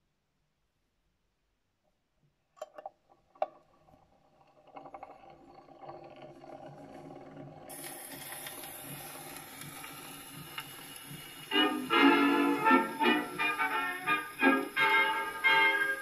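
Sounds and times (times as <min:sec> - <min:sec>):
record hiss and crackle: 0:00.0 - 0:16.0.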